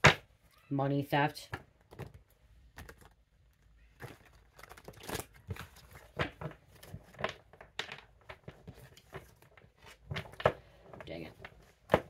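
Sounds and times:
cards being shuffled: 1.5s - 12.0s.

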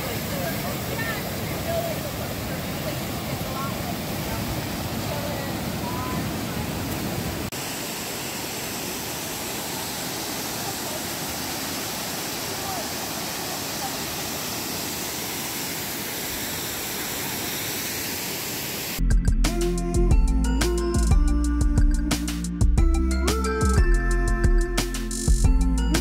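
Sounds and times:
rushing river and waterfall: 0.0s - 19.0s.

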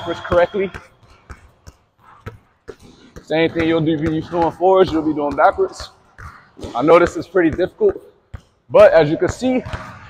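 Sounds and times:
basketball bouncing on gym floor: 0.0s - 10.0s.

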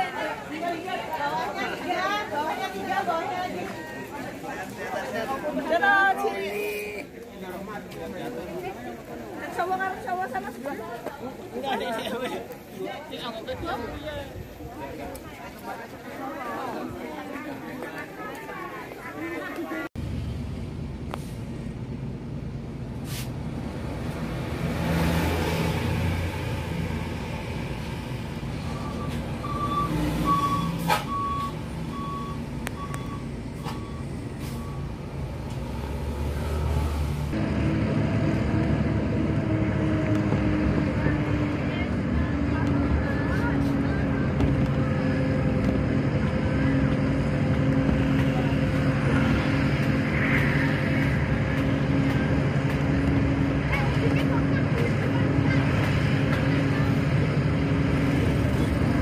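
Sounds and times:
bus engine and road noise: 0.0s - 59.0s
high beeps: 28.7s - 35.0s.

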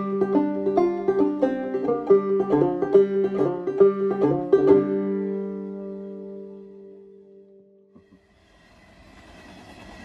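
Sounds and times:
diesel locomotive passing: 8.0s - 10.0s.

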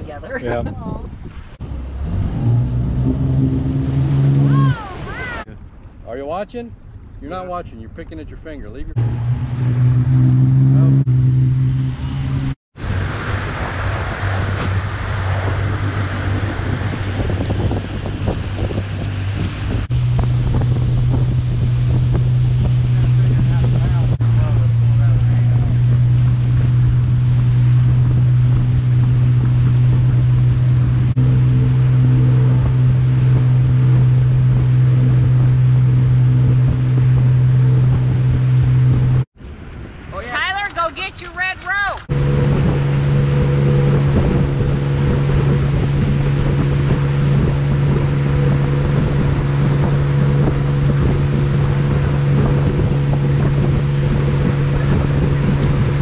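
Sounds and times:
rush of wake water: 0.0s - 5.7s, 12.0s - 40.6s, 42.0s - 56.0s
wind on microphone: 0.0s - 5.8s, 8.9s - 40.6s, 42.0s - 56.0s
motorboat engine drone: 1.6s - 5.5s, 9.0s - 39.3s, 42.1s - 56.0s.

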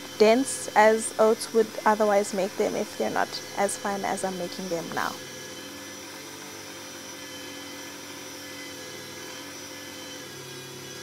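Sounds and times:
blender motor grinding oats: 0.0s - 11.0s.

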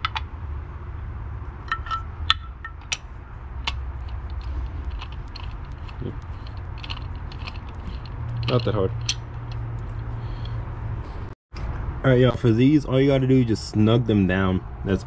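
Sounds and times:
metallic clicks of socket wrench: 3.6s - 10.6s.

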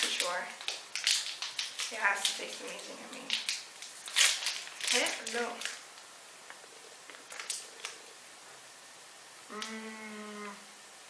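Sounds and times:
wrapper crinkling: 0.0s - 6.1s, 7.1s - 8.0s.

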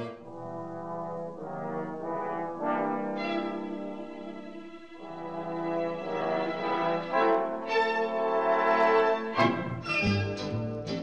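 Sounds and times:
brass chords: 0.0s - 11.0s.

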